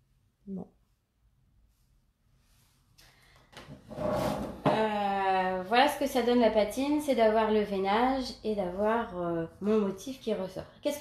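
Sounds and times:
wooden table scraping on worktop: 3.7s - 4.8s.

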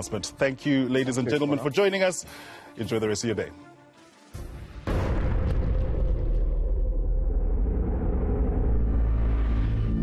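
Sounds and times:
music: 0.0s - 6.6s, 8.2s - 10.0s
deep cinematic rumble: 4.9s - 10.0s.

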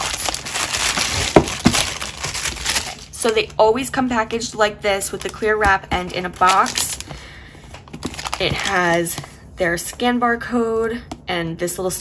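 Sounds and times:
plastic wrap crinkling: 0.0s - 3.6s, 5.0s - 9.3s.

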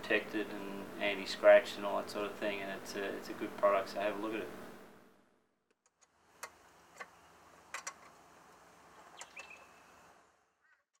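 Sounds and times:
faint high chirp: 9.1s - 9.9s.

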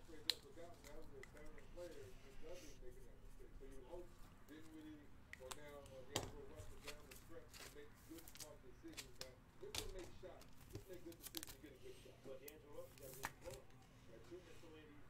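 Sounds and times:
faint background voice: 0.0s - 15.0s
trading cards clicking and tapping: 5.4s - 11.6s.

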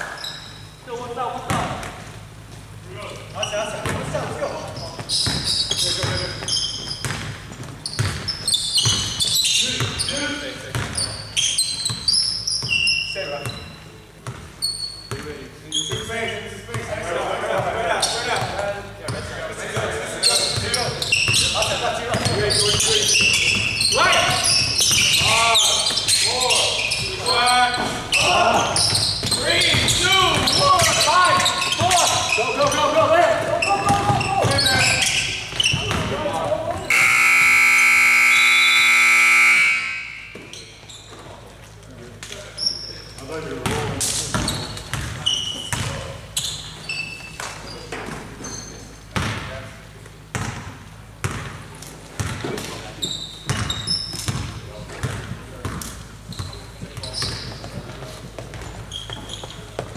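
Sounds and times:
players' voices: 0.8s - 6.8s, 15.1s - 46.6s
basketball bouncing on hardwood: 5.0s - 10.0s, 35.5s - 36.2s, 43.6s - 46.0s, 50.3s - 51.6s, 52.2s - 52.6s, 53.5s - 59.9s
scoreboard buzzer horn: 36.9s - 40.5s.

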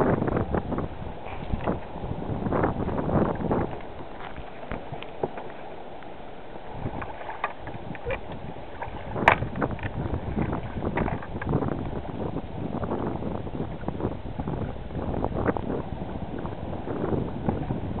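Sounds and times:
wind buffeting microphone: 0.0s - 5.7s, 6.4s - 18.0s
water splashing against kayak hull: 0.0s - 18.0s.

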